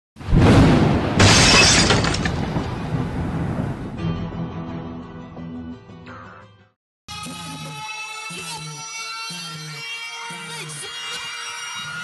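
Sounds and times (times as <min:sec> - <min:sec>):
glass shattering with low boom: 0:00.2 - 0:04.0
rumbling noise: 0:01.9 - 0:04.2.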